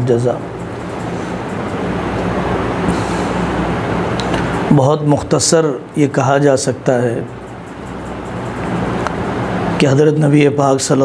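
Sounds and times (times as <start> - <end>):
steady rumbling: 0.0 - 11.0.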